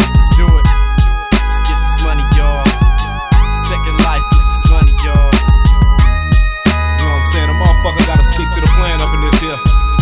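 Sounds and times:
booming kick drums: 0.0s - 6.8s, 7.7s - 9.0s
heavy bassline: 0.0s - 10.0s.

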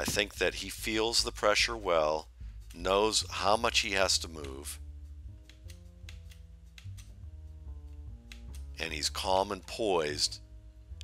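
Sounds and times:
light ticking percussion: 0.0s - 9.8s.

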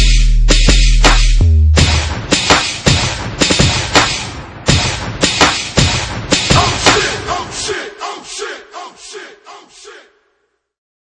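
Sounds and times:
hip-hop beat: 0.0s - 10.1s
shouted group vocals: 6.5s - 10.2s.

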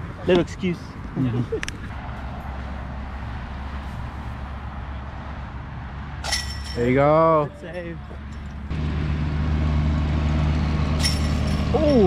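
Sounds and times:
disc striking metal chains: 6.2s - 7.0s, 11.0s - 12.0s.

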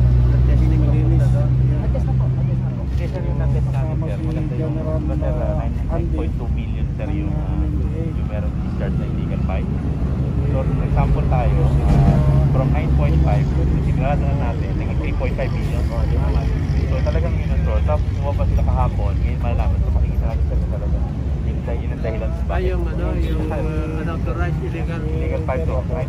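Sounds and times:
low vehicle engine rumble: 0.0s - 26.0s
men talking: 0.0s - 26.0s.

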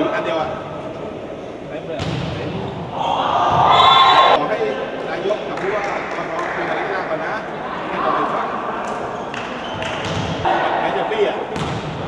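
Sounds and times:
hand slapping volleyball: 8.9s - 10.4s.

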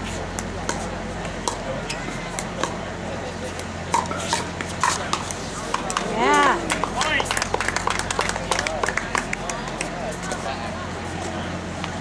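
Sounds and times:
scattered clapping: 4.0s - 10.4s.

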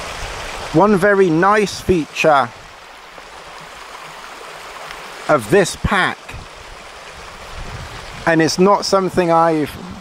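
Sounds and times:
river rushing: 0.0s - 10.0s.

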